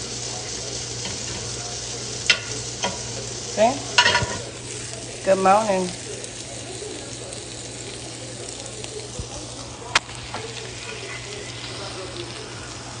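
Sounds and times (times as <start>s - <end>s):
chicken sizzling in a skillet: 0.0s - 13.0s.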